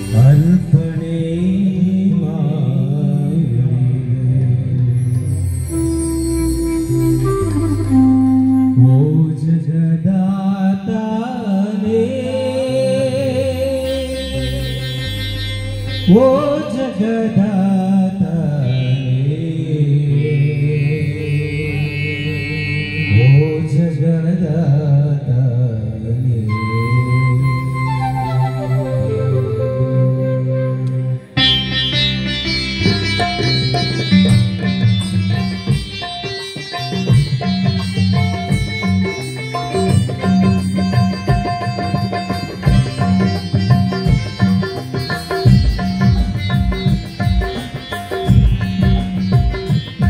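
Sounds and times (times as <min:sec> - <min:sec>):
man singing into microphone: 0:00.0 - 0:05.4, 0:08.5 - 0:15.1, 0:16.0 - 0:31.3
keyboard steady notes: 0:00.0 - 0:09.8, 0:11.6 - 0:24.6, 0:26.5 - 0:50.0
hand drum beat: 0:36.9 - 0:50.0.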